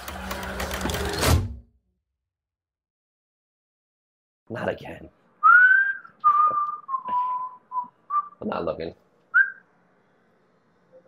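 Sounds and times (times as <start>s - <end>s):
person whistling: 5.4s - 8.4s, 9.4s - 9.6s.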